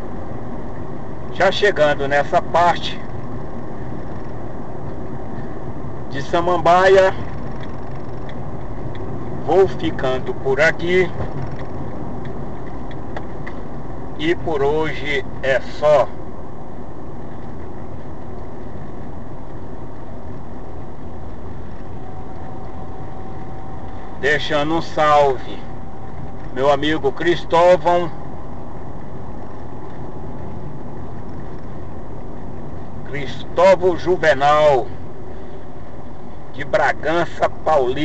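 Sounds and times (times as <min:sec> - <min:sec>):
car road and engine noise: 0:00.0 - 0:38.0.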